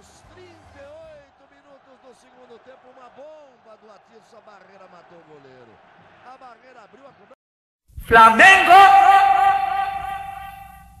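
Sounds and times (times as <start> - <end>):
man singing long held note: 8.1 - 10.9.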